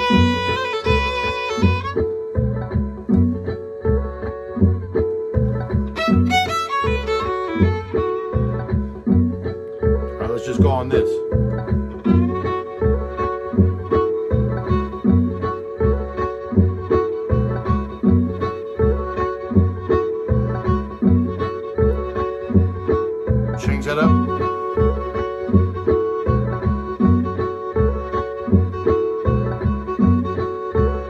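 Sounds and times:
fiddle playing blues: 0.0s - 2.8s, 5.5s - 31.0s
pulsing bass-heavy beat: 0.0s - 31.0s.

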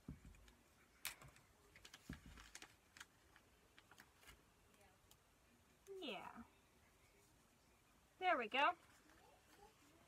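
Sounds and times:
paper rustle: 1.2s - 4.4s.

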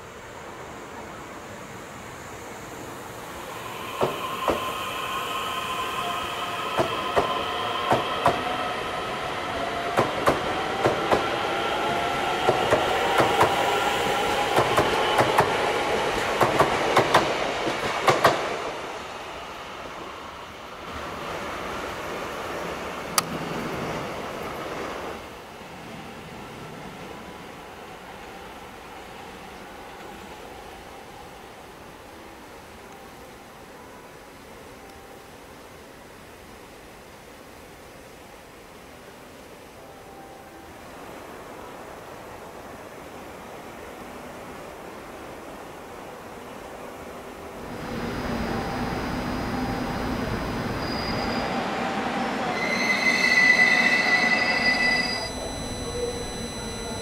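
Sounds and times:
train high whine: 0.0s - 36.7s, 38.1s - 57.0s.

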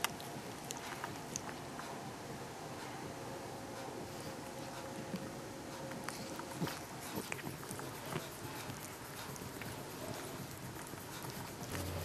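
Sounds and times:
cat licking its paw: 6.3s - 12.0s.

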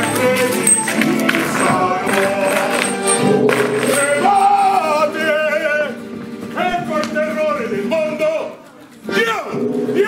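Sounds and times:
voices singing long notes: 0.0s - 6.0s
instrumental accompaniment: 0.0s - 10.0s.

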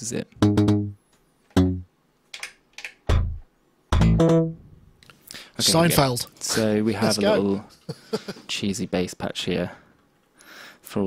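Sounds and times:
plucked synth bass notes: 0.4s - 1.0s, 1.6s - 1.9s, 3.1s - 4.6s.

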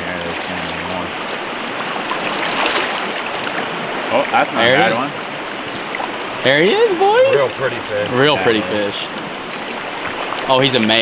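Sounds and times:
water running over rocks: 0.0s - 11.0s.

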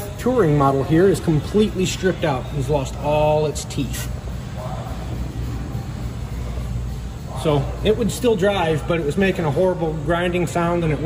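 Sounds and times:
workshop low hum: 0.0s - 11.0s.

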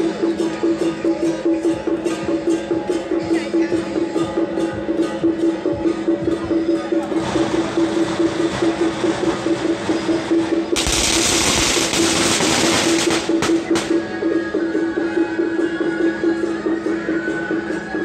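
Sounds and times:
festival procession music: 0.0s - 18.0s
single firecracker bangs: 10.8s - 14.0s
firecrackers crackling: 10.8s - 14.1s.

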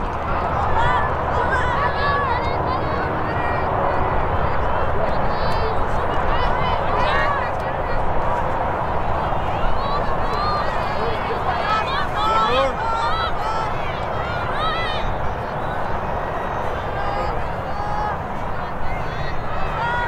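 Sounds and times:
girls calling and shouting: 0.0s - 20.0s.

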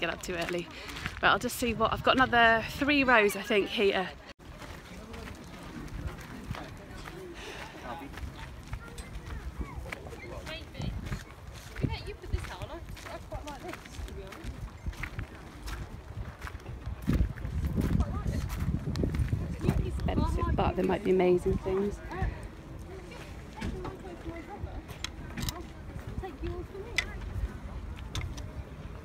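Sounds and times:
faint footsteps: 0.0s - 29.0s
wind rumbling on microphone: 1.0s - 3.1s, 5.6s - 7.1s, 8.1s - 29.0s.

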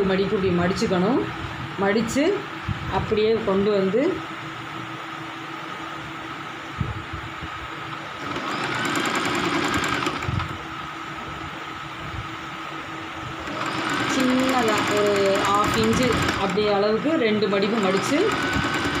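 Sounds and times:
steady low hum: 0.0s - 19.0s
sewing machine stitching: 8.2s - 10.5s, 13.4s - 19.0s.

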